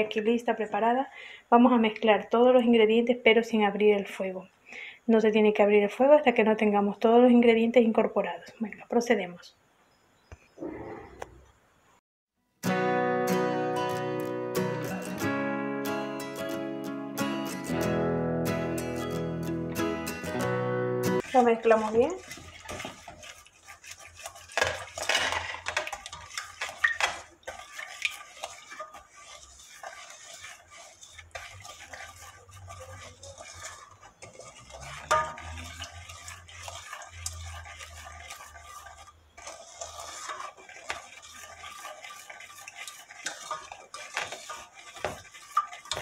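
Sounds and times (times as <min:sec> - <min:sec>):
spatula scraping metal pot: 0:21.2 - 0:46.0.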